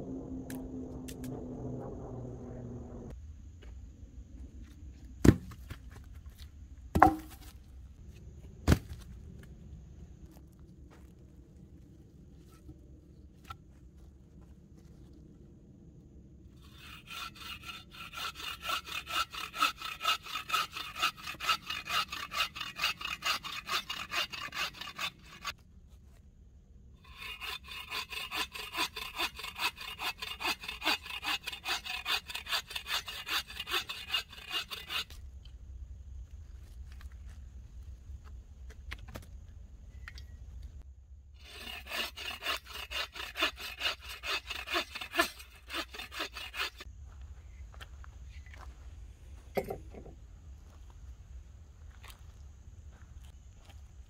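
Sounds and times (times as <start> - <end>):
saw cutting through log: 16.6 - 25.6, 27.0 - 35.2, 41.4 - 46.9.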